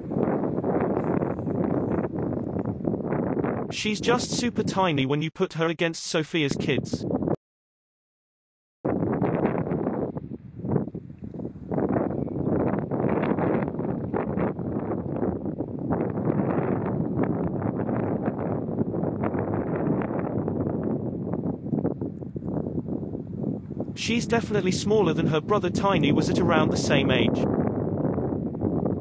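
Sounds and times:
wind noise on microphone: 0:00.0 - 0:05.0, 0:06.4 - 0:07.4, 0:08.8 - 0:29.0.

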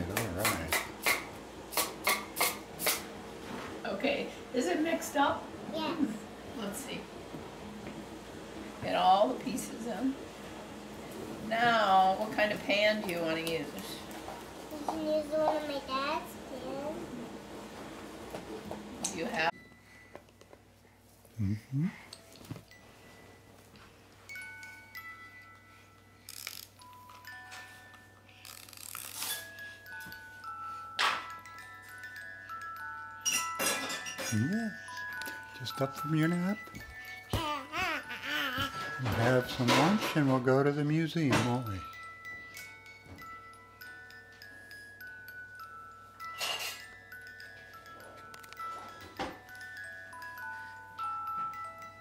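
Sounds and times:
music box tinkling tune: 0:19.5 - 0:20.6, 0:22.1 - 0:52.0.

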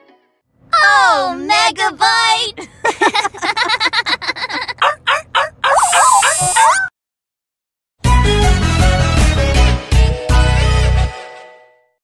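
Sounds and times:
cartoon children laughing: 0:02.6 - 0:06.9
warbling sound effect with hiss: 0:05.8 - 0:06.8.

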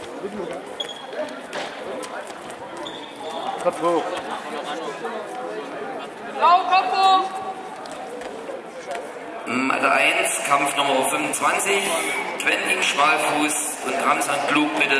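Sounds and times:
background chatter of voices: 0:00.0 - 0:14.9.

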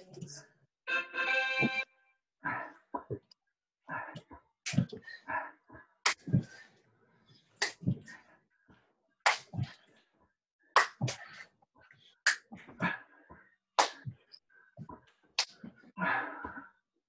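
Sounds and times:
push-ups slapping on floor: 0:03.9 - 0:05.2, 0:06.0 - 0:06.7, 0:07.6 - 0:08.2, 0:09.2 - 0:09.9, 0:10.8 - 0:11.5, 0:12.2 - 0:13.0, 0:13.8 - 0:15.8.

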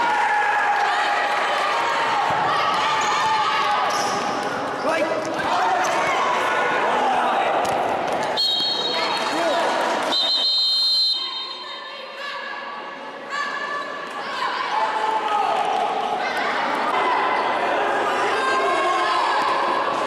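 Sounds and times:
voices of players and spectators: 0:00.0 - 0:20.0
referee's whistle blasts: 0:08.4 - 0:09.1, 0:10.1 - 0:11.8.

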